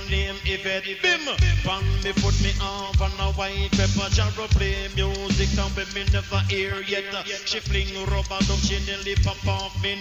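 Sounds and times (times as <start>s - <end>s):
heavy pulsing bass line: 0.0s - 0.6s, 1.4s - 6.9s, 7.5s - 10.0s
person chanting over beat: 0.0s - 10.0s
reggae beat on sound system: 0.0s - 10.0s.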